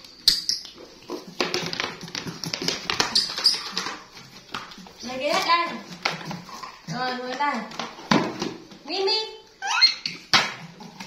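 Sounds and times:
monkeys calling: 0:09.6 - 0:10.2.

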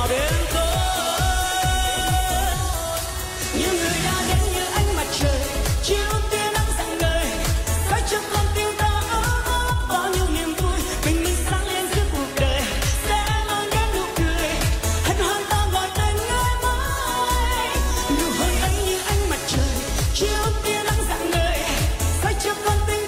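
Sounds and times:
dance backing track: 0:00.0 - 0:23.0
woman singing: 0:00.0 - 0:23.0.

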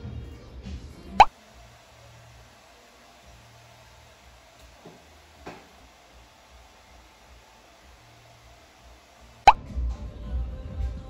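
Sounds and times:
background music: 0:09.4 - 0:11.0.

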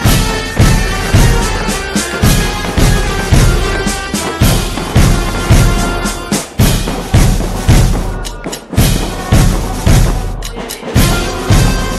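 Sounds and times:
bugles sounding held notes: 0:00.0 - 0:06.4
heavy bass drum beats: 0:00.0 - 0:11.9.

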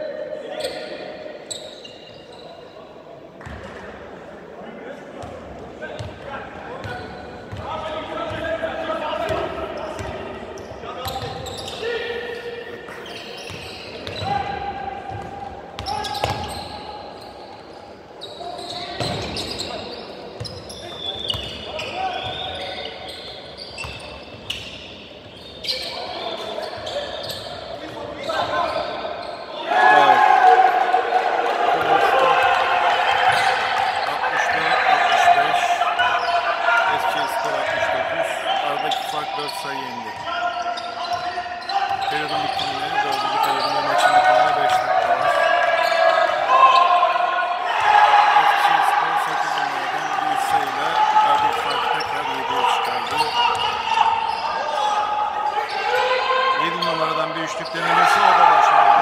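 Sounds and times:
people calling out echoing: 0:27.8 - 0:59.0.

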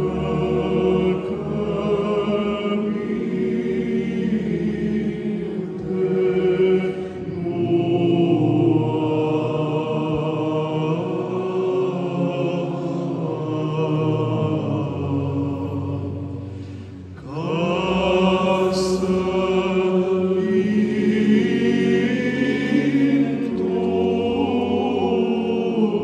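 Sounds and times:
male choir chanting: 0:00.0 - 0:26.0.

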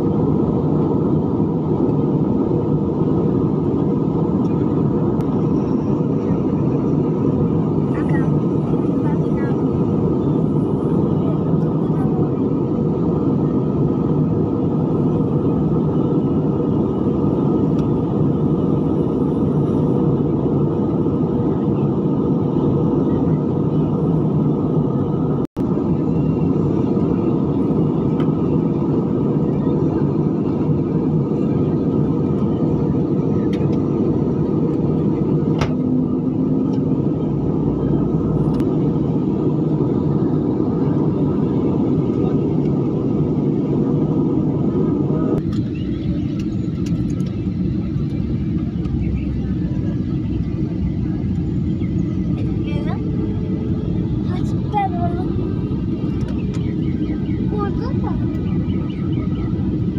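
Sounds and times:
jet airliner cabin noise: 0:00.0 - 0:59.9.

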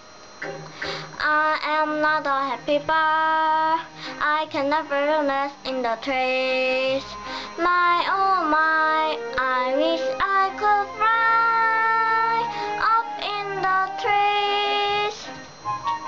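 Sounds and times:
child singing: 0:01.2 - 0:15.3
backing music: 0:03.8 - 0:16.0.

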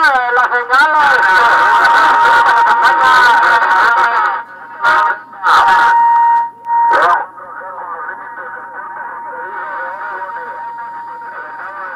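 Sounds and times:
radio static: 0:00.0 - 0:06.0, 0:06.9 - 0:11.9
distorted radio voices: 0:00.0 - 0:11.9
interference whistle: 0:04.8 - 0:07.2.

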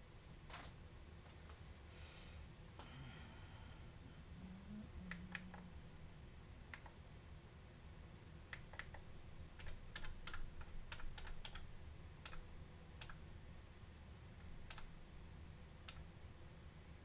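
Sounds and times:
faint low hum: 0:00.0 - 0:17.0
sequencer buttons clicking: 0:05.1 - 0:05.7, 0:06.7 - 0:07.0, 0:08.5 - 0:13.2, 0:14.6 - 0:14.9.

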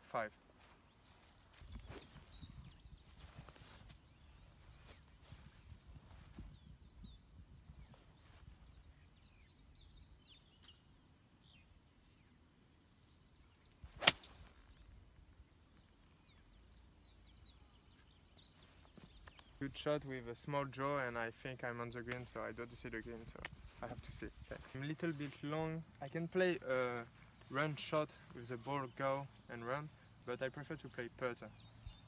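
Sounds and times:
faint bird chirps: 0:00.1 - 0:32.0
golf club striking ball: 0:14.0 - 0:14.3.

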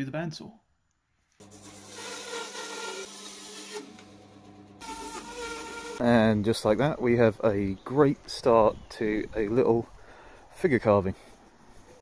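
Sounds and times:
bandsaw cutting wood: 0:01.4 - 0:06.0.

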